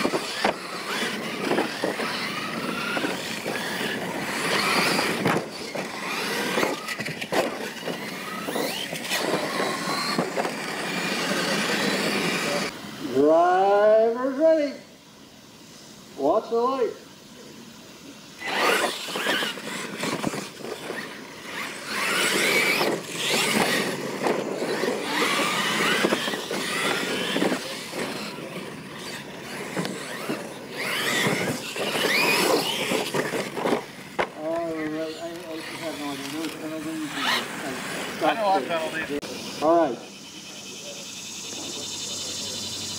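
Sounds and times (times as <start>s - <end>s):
electric motor whine: 0.0s - 13.0s, 18.4s - 42.9s
tyres on dirt: 0.0s - 14.4s, 17.9s - 42.9s.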